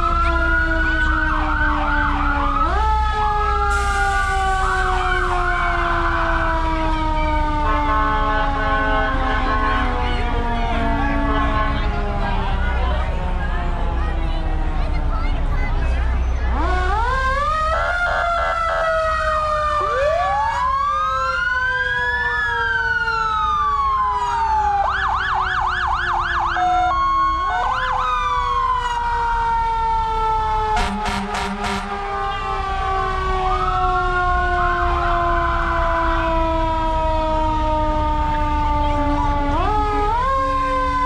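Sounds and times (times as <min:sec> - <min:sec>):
emergency sirens wailing: 0:00.0 - 0:41.0
harsh horn blast: 0:30.8 - 0:32.6.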